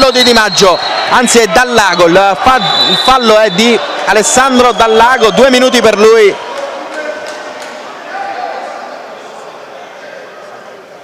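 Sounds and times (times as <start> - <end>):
crowd murmur and shouts: 0.0 - 11.0.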